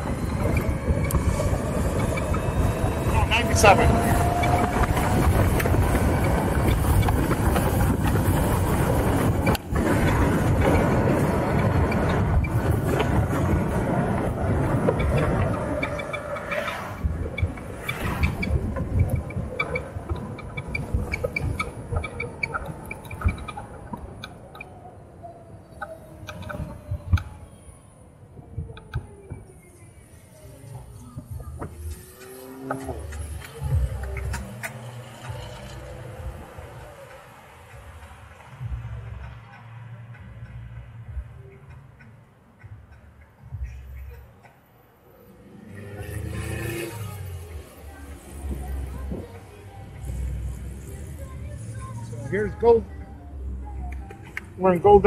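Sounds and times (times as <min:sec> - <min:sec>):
wind rushing past microphone: 0:00.0 - 0:27.6
traffic: 0:00.0 - 0:55.0.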